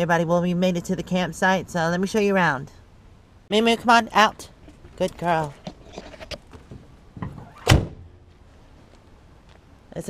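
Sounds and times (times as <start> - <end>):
van door slamming: 6.7 - 8.1.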